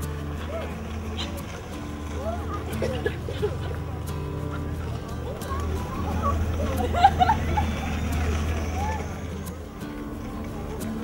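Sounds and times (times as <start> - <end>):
low engine hum: 0.0 - 11.0
people's voices: 0.0 - 11.0.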